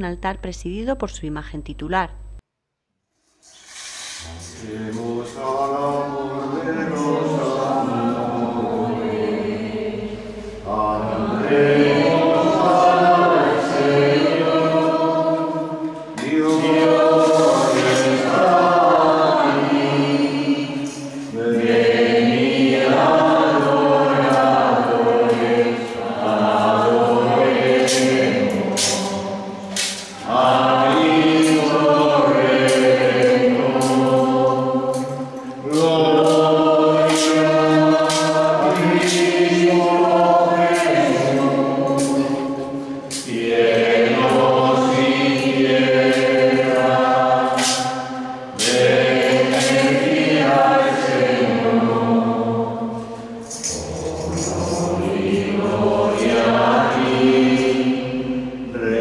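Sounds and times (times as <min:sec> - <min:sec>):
group singing a slow hymn: 0:03.9 - 0:59.0.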